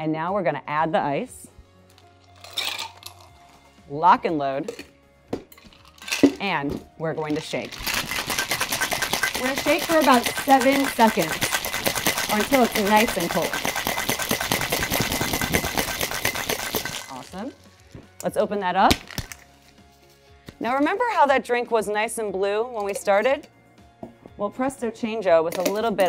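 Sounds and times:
ice cubes rattling in metal shaker: 2.4s - 3.3s, 5.6s - 6.4s, 7.2s - 17.6s.

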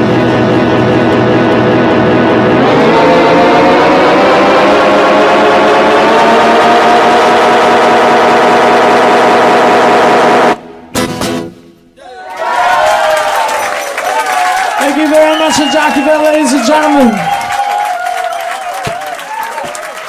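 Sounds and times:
acoustic guitar drone: 0.0s - 12.0s.

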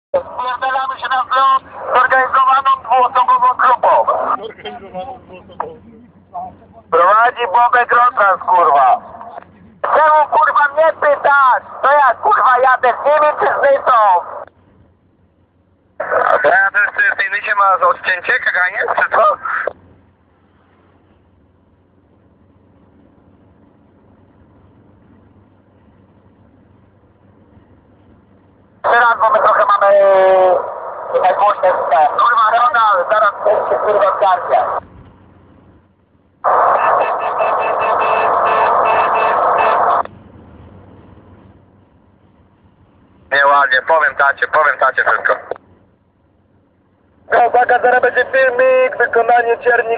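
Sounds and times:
man talking over radio: 0.1s - 14.5s, 16.0s - 19.8s, 28.8s - 34.8s, 43.3s - 45.6s, 47.3s - 49.9s.

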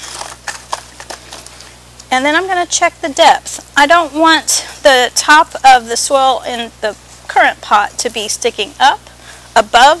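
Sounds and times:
soil rustling into plastic pot: 0.0s - 1.8s.

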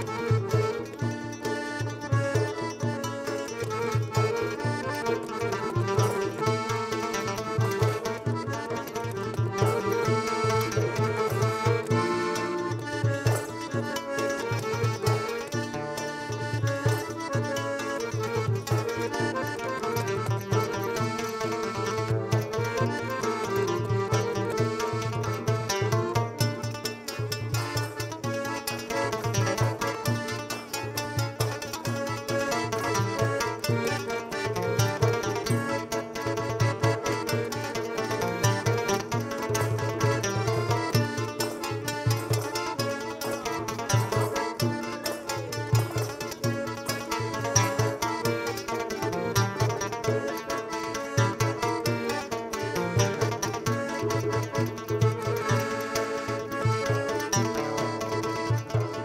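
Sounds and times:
plucked lute: 0.0s - 59.0s.

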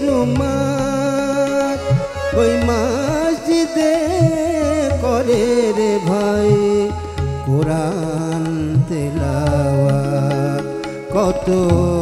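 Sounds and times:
harmonium holding notes: 0.0s - 12.0s.

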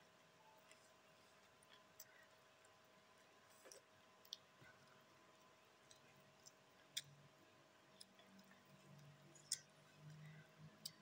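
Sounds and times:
faint chewing: 0.6s - 11.0s.

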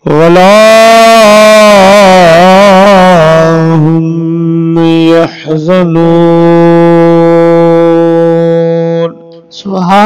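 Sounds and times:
man chanting a long sung note: 0.0s - 10.0s.

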